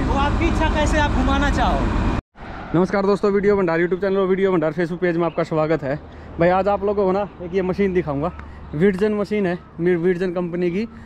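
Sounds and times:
engine rumbling: 0:00.0 - 0:11.0
men talking: 0:02.7 - 0:11.0.

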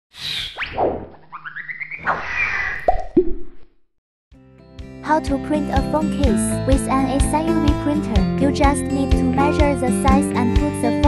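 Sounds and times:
cartoon pops: 0:00.6 - 0:03.7.

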